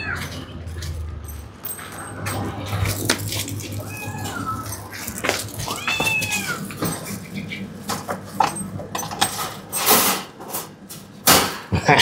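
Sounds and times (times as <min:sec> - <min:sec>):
cat meowing: 0:03.7 - 0:06.8.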